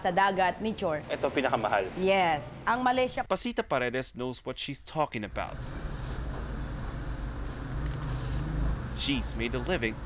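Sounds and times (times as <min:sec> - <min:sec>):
gas stove burner hissing: 0:05.3 - 0:10.0.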